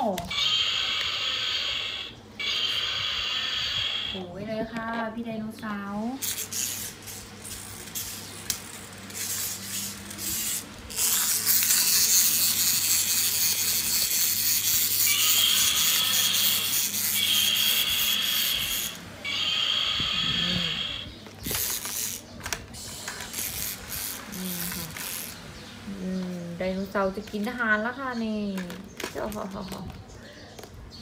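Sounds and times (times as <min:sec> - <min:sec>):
toy motor grinding: 0:00.0 - 0:04.2, 0:06.2 - 0:25.6.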